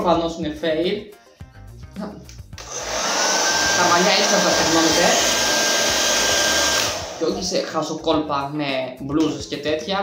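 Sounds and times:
hair dryer blowing: 2.6 - 7.7.

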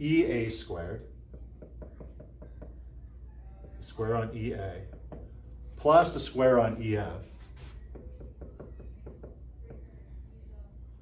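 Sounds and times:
marker writing on whiteboard: 0.2 - 11.0.

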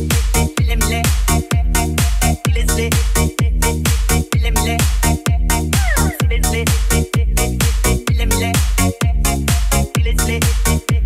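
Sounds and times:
electronic dance music: 0.0 - 11.0
kick drum: 0.0 - 11.0.

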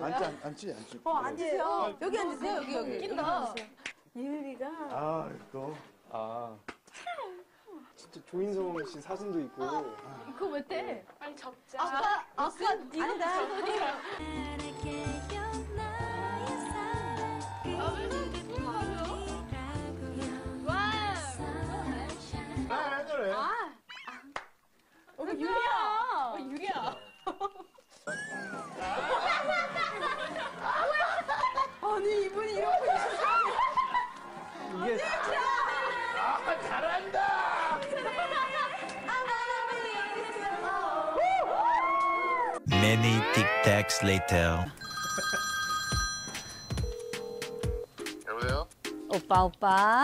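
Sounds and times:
person calling in sing-song voice: 42.7 - 44.7
telephone ringing: 42.7 - 48.0.

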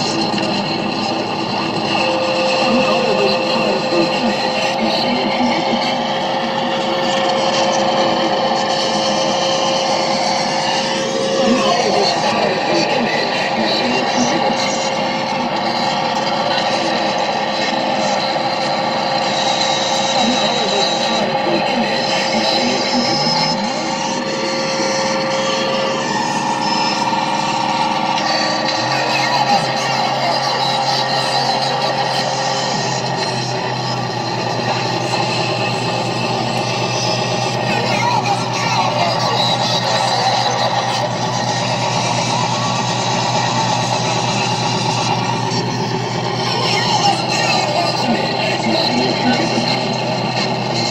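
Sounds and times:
held tones: 0.0 - 9.4
low drone: 0.0 - 50.9.

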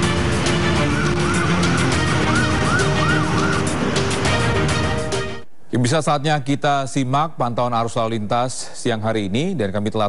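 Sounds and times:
intro music: 0.0 - 5.5
siren wailing: 0.4 - 4.2.

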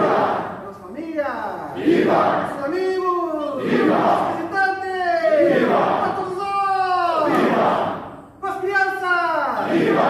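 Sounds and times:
crowd shouting together: 0.0 - 0.6, 1.8 - 2.6, 3.6 - 4.4, 5.3 - 6.2, 7.1 - 8.1, 9.6 - 10.0.

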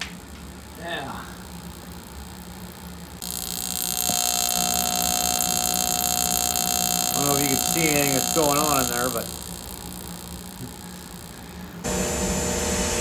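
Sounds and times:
spark igniter buzzing: 1.4 - 12.6.

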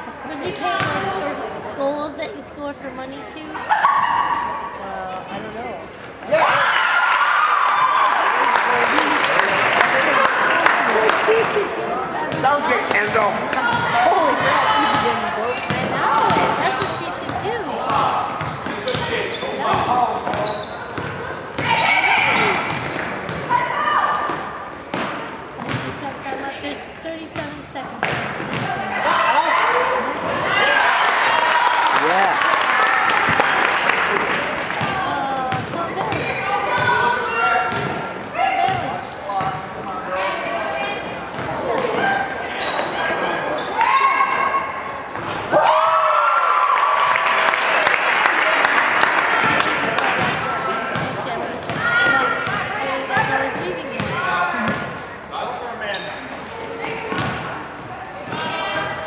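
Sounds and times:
people shouting in a gym: 3.6 - 4.8, 6.3 - 8.5, 17.7 - 24.6, 28.6 - 33.4, 36.0 - 47.2, 51.7 - 54.7.

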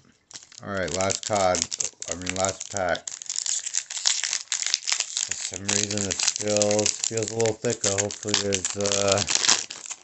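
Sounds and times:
foil wrapper crinkling and tearing: 0.3 - 10.0.

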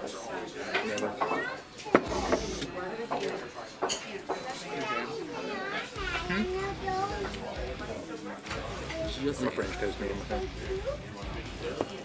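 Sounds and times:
indistinct voices talking: 1.2 - 12.0.

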